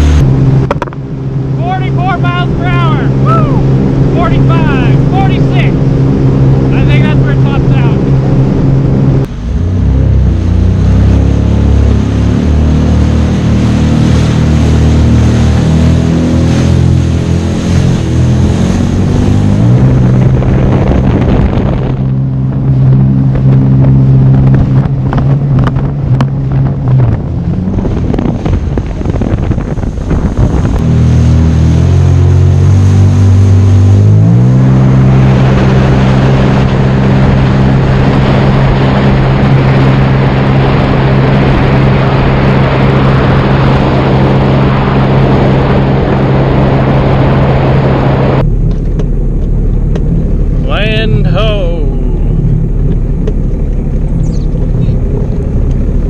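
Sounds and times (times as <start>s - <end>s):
watercraft engine at speed: 0.0s - 56.0s
wind on microphone: 0.0s - 56.0s
rush of spray: 9.3s - 21.4s.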